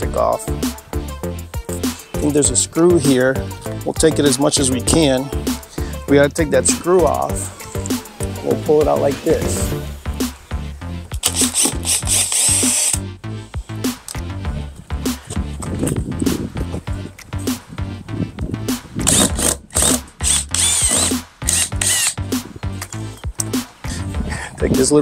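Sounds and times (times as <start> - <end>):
background music with beat: 0.0 - 25.0
power drill backing out screws: 19.0 - 22.2.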